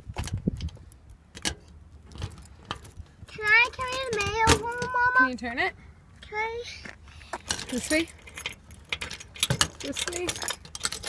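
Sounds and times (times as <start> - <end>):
keys jangling: 7.5 - 11.0.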